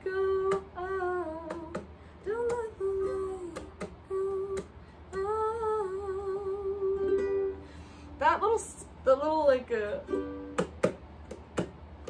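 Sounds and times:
ukulele strumming: 0:00.0 - 0:12.0.

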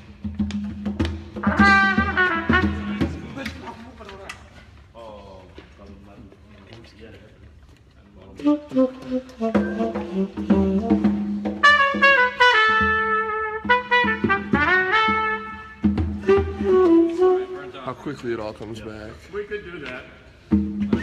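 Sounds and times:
small band accompaniment: 0:00.0 - 0:03.7, 0:08.3 - 0:18.4, 0:20.4 - 0:21.0
brass instrument melody: 0:01.3 - 0:03.6, 0:08.3 - 0:18.4.

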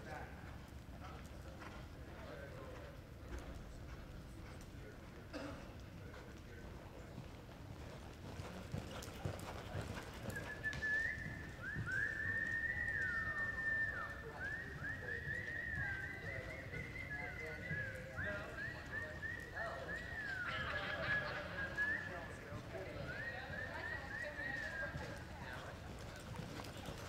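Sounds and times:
horse hoofbeats on dirt: 0:07.2 - 0:13.2, 0:24.8 - 0:27.0.

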